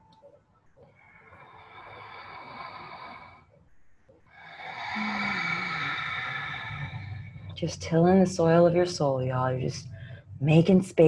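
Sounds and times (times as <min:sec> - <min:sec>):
deep sighing exhale: 0:04.4 - 0:07.6
woman inhaling: 0:04.4 - 0:07.6.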